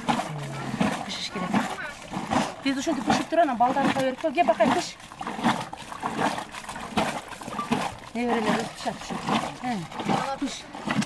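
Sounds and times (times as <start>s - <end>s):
wooden plunger splashing in liquid: 0.0s - 11.0s.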